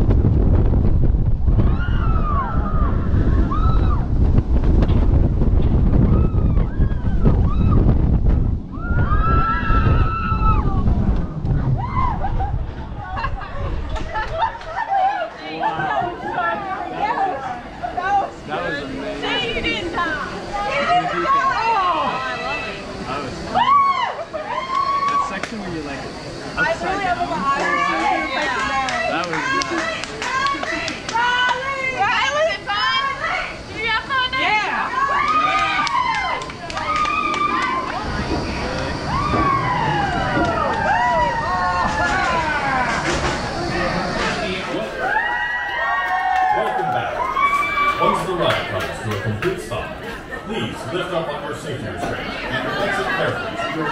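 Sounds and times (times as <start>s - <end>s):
roller coaster train rumbling on track: 0.0s - 53.9s
riders whooping and cheering: 1.6s - 4.2s, 6.0s - 8.1s, 8.7s - 18.2s, 20.5s - 25.5s, 27.4s - 48.6s
people chatting: 24.3s - 45.2s, 48.0s - 53.9s.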